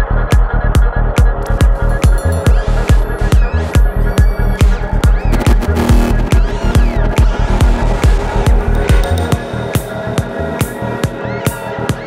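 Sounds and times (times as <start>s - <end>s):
kick drum: 0.0s - 10.4s
rolling bassline: 0.0s - 12.0s
sweeping synth sounds: 0.0s - 12.0s.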